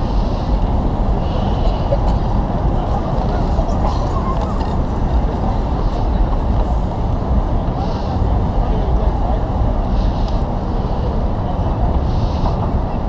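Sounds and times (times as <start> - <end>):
crowd voices: 0.0 - 13.0
traffic: 0.0 - 13.0.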